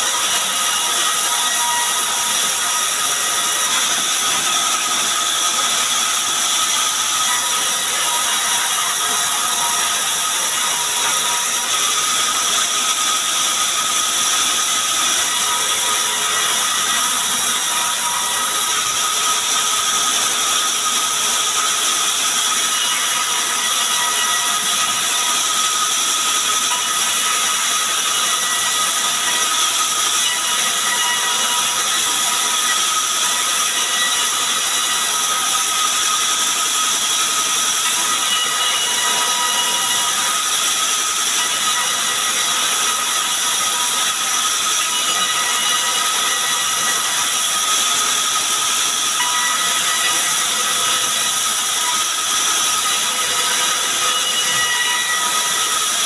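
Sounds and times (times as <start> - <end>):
bandsaw cutting timber: 0.0 - 56.0.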